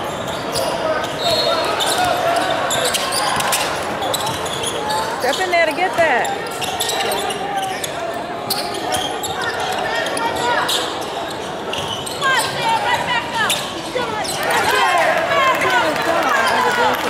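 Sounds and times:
sneakers squeaking: 0:00.0 - 0:14.9
people calling out: 0:12.0 - 0:17.0.

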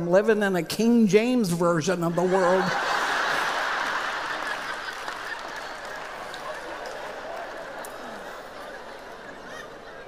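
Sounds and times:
audience laughing: 0:02.0 - 0:10.0
audience clapping: 0:02.8 - 0:09.9.

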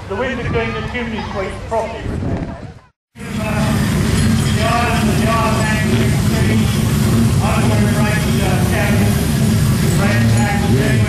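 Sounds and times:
people talking: 0:00.1 - 0:11.0
steady low rumble: 0:03.2 - 0:11.0.

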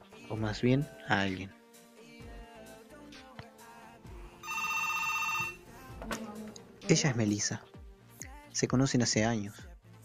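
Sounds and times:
soft background music: 0:00.0 - 0:10.0
phone ringing: 0:04.4 - 0:05.7.

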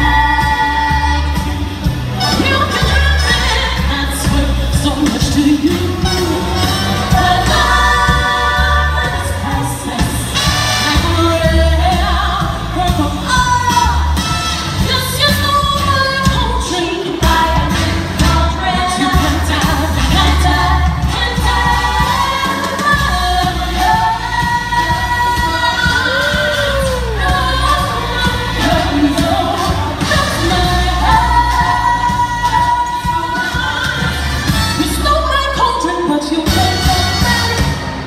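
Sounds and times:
woman singing into microphone: 0:00.0 - 0:14.1, 0:14.8 - 0:37.8
pulsing bass line: 0:00.0 - 0:35.1
loud band music: 0:00.0 - 0:38.0.

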